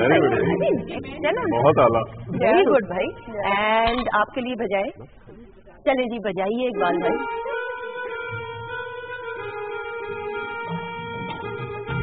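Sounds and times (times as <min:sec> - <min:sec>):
small live band playing: 0:00.0 - 0:03.8, 0:06.6 - 0:12.0.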